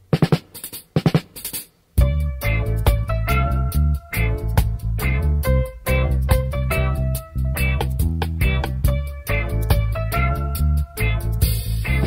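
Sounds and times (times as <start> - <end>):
drum strikes: 0.0 - 12.0.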